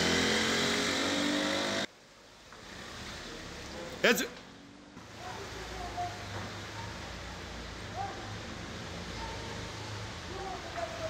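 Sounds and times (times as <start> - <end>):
car engine low hum: 0.0 - 2.0.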